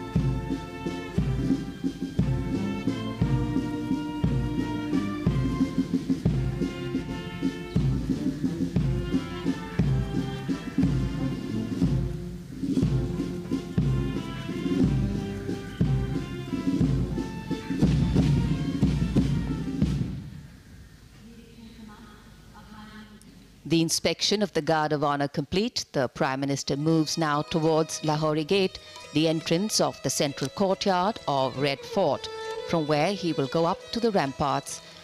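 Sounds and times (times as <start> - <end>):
military band playing slow march: 0.0 - 20.6.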